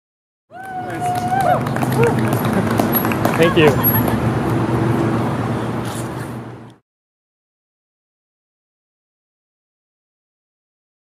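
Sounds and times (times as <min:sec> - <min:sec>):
outdoor background noise: 0:00.5 - 0:06.8
group of people talking: 0:00.7 - 0:04.3.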